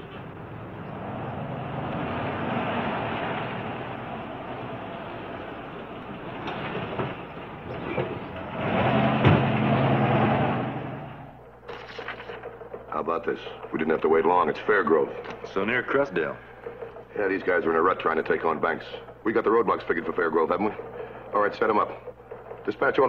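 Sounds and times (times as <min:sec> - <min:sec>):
motor vehicle running: 0:00.0 - 0:23.0.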